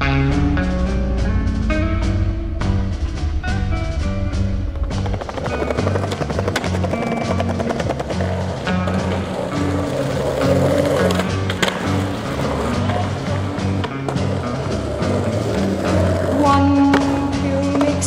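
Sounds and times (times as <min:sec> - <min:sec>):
background music with bass: 0:00.0 - 0:18.0
skateboard wheels rolling: 0:04.7 - 0:18.0
skateboard clack: 0:04.9 - 0:18.0.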